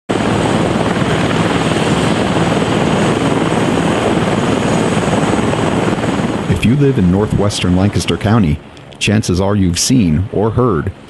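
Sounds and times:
helicopter rotors turning: 0.1 - 11.0.

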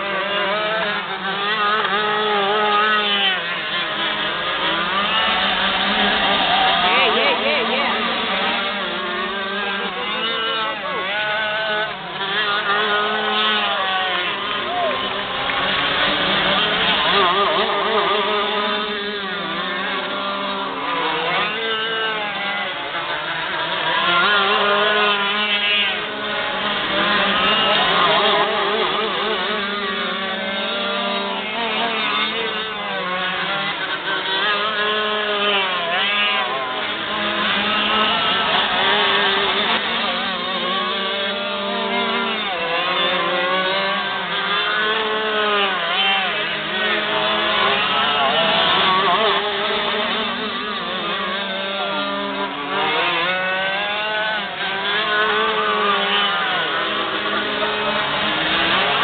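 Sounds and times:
kart engines racing: 0.0 - 59.0.

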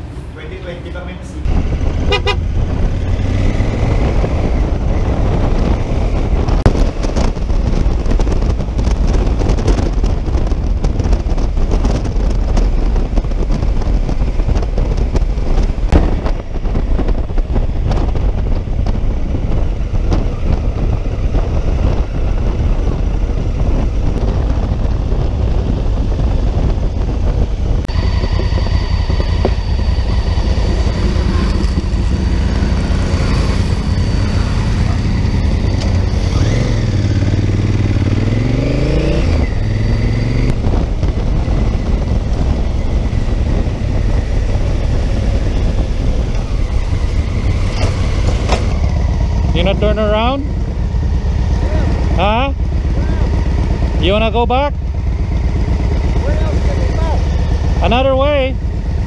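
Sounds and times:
wind rush over helmet: 1.4 - 59.0
motorcycle engine running: 1.5 - 59.0
voices: 51.5 - 54.8, 55.6 - 58.6.

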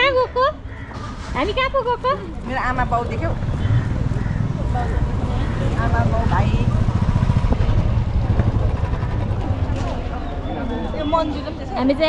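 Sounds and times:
vehicle engine and road rumble: 0.0 - 12.0.

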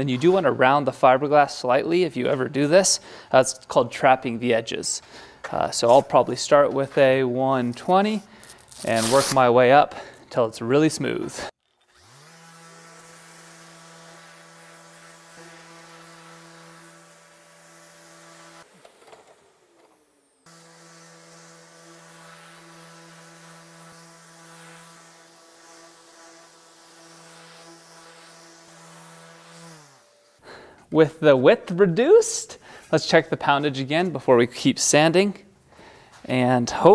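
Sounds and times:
orbital sander running: 11.8 - 30.4.

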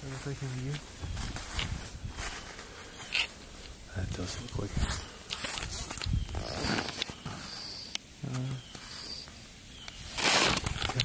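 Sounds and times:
footsteps crunching leaves and snow: 0.0 - 7.8, 9.9 - 11.0.

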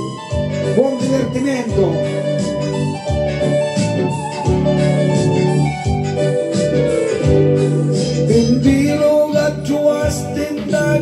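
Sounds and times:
backing track with guitar: 0.0 - 11.0
man singing into microphone: 8.2 - 11.0.

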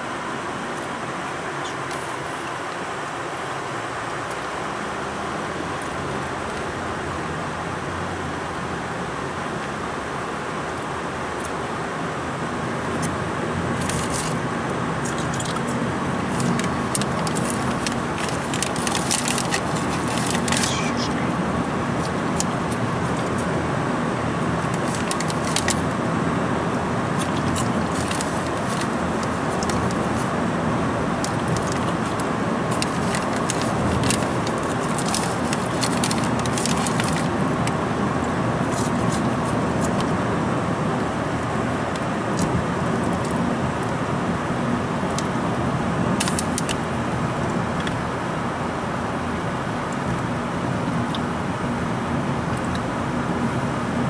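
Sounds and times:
car engine and tyre noise: 0.0 - 54.0.

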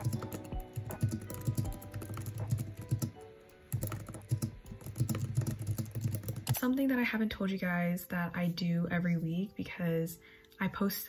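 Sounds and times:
keyboard typing clicks: 0.0 - 6.6
background music: 0.0 - 11.0.

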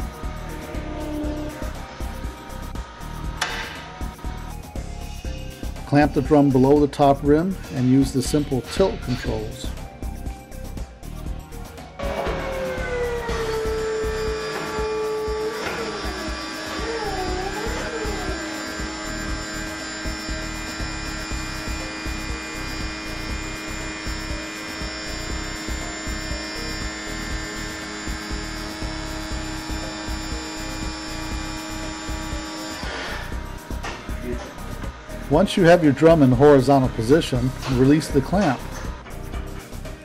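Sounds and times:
hydraulic motor whine: 0.0 - 5.8, 10.8 - 40.0
background music: 0.0 - 40.0.

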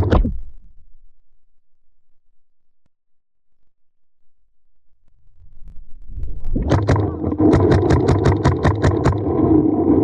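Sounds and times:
paintball marker rapid fire: 6.6 - 9.3.

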